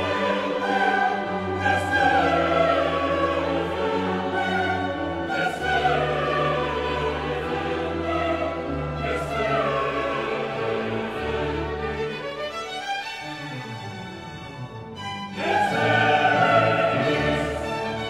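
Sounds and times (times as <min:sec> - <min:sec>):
choir singing: 0:00.0 - 0:12.8, 0:15.0 - 0:18.0
orchestra playing: 0:00.0 - 0:18.0.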